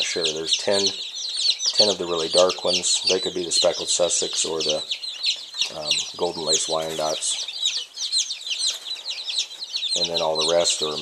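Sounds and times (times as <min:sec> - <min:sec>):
chicks peeping: 0:00.0 - 0:11.0.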